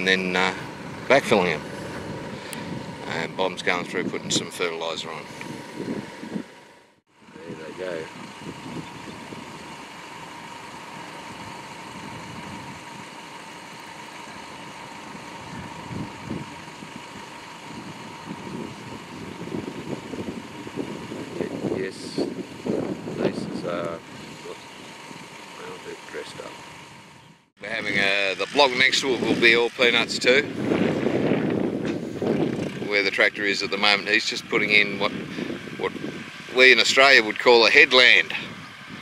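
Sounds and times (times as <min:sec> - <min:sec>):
tractor engine running: 0:00.0 - 0:39.0.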